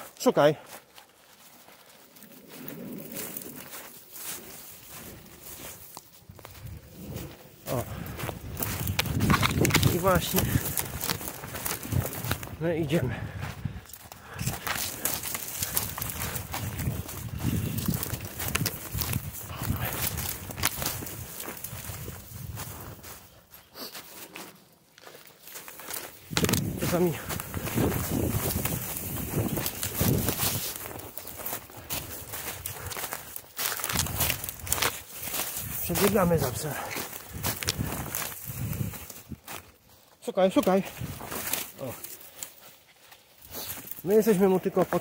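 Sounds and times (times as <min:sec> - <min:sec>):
footsteps running through dry leaves: 0:00.0 - 0:45.0.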